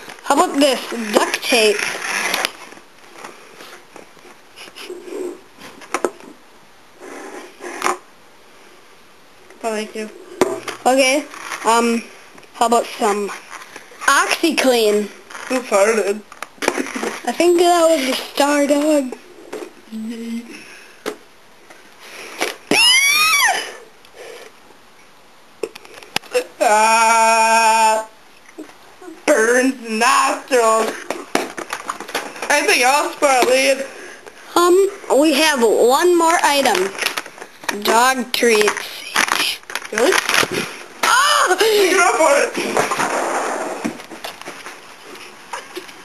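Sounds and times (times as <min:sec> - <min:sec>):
person shrieking: 0:22.7 - 0:23.9, 0:41.0 - 0:42.0.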